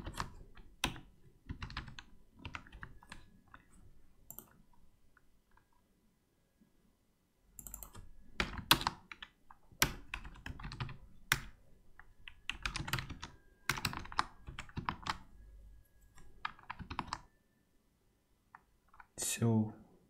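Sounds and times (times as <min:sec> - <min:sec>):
typing on computer keyboard: 0:00.0 - 0:05.8, 0:07.6 - 0:15.3, 0:16.0 - 0:17.3.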